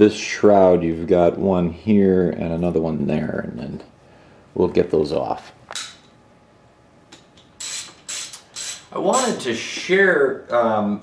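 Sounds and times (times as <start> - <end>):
socket ratchet clicking: 7.2 - 8.9.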